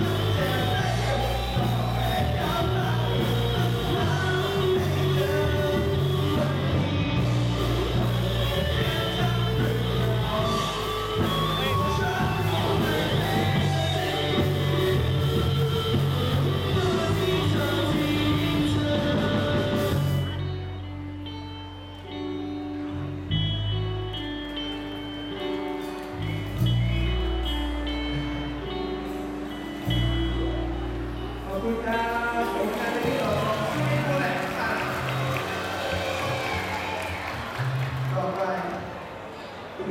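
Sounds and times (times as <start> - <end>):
drum kit: 0.0 - 20.4
person singing: 0.0 - 21.3
bass guitar: 0.0 - 38.4
electric guitar: 0.0 - 39.9.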